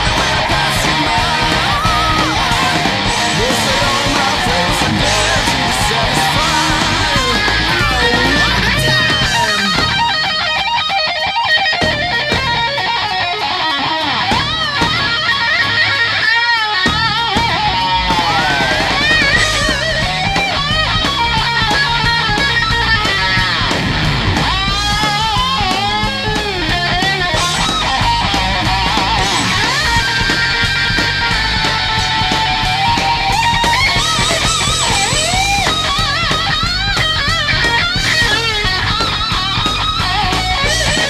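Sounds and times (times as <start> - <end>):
electric guitar solo: 0.0 - 41.0
rock backing track: 0.0 - 41.0.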